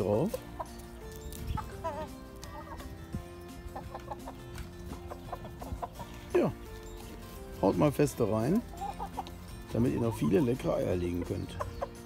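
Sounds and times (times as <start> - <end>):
hens clucking: 0.0 - 12.0
pecking ticks: 0.3 - 3.0, 3.6 - 7.4, 8.6 - 9.8.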